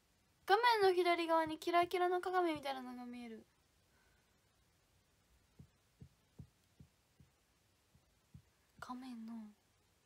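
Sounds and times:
faint low dull thumps: 5.4 - 8.9.

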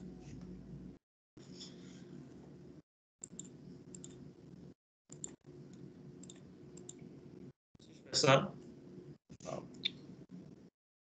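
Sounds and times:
computer mouse clicks: 3.2 - 4.2, 5.1 - 7.0.

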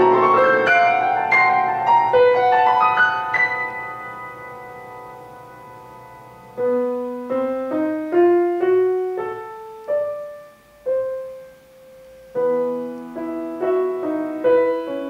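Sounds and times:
solo grand piano: 0.0 - 15.0.

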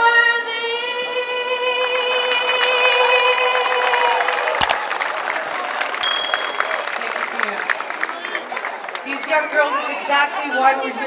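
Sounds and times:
woman singing amplified: 0.0 - 4.2
crowd applauding and cheering: 1.7 - 10.4.

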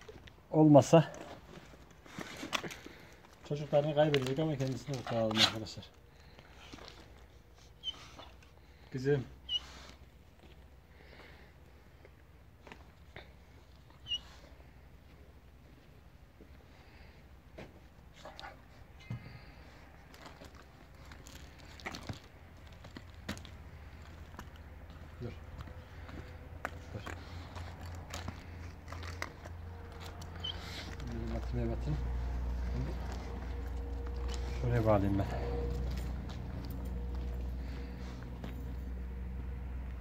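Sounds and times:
low rumble: 22.2 - 40.0.

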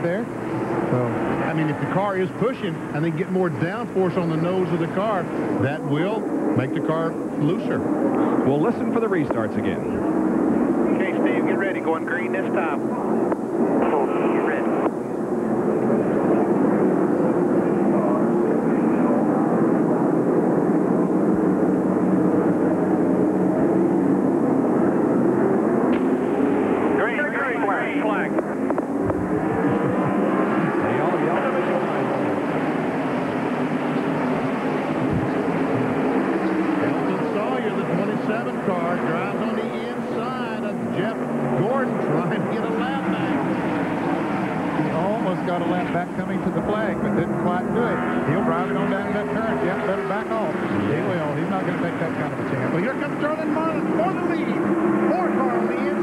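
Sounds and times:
race car engines at full throttle: 0.0 - 56.0.

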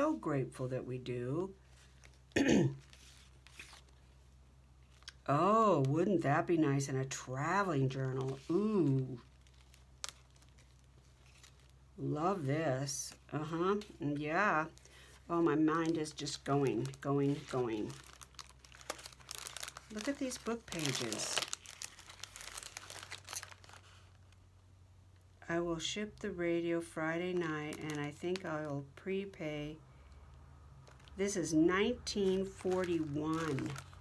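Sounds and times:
paper rustling and crinkling: 1.6 - 4.2, 7.9 - 11.8, 13.8 - 24.3, 30.8 - 34.0
person clearing throat: 2.4 - 2.8.

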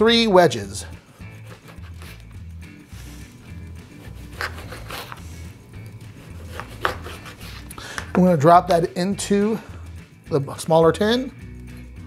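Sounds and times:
knife cutting on a board: 1.2 - 2.4, 3.0 - 8.2.

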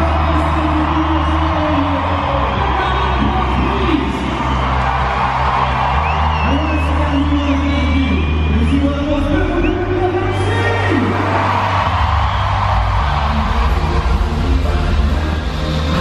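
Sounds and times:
crowd cheering and whooping: 0.0 - 16.0
electronic dance music: 0.0 - 16.0.

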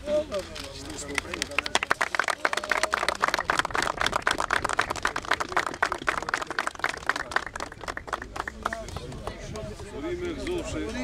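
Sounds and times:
people applauding: 1.0 - 10.5.

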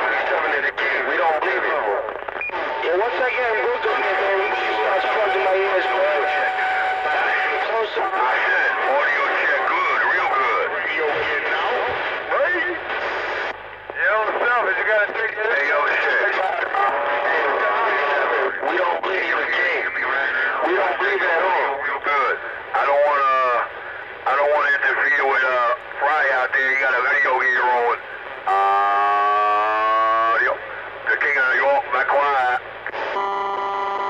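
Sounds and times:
garbled overlapping radio voices: 0.0 - 34.0
steady radio whistle: 2.4 - 11.9.

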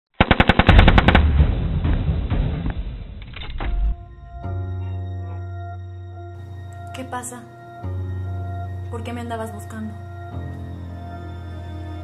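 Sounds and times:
machine gun burst: 0.2 - 2.0
low rumbling tail: 0.7 - 5.3.

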